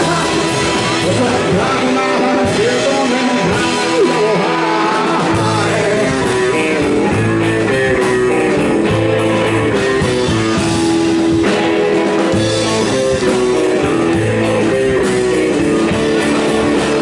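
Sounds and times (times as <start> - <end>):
bass notes: 0.0 - 17.0
electric guitar: 0.0 - 17.0.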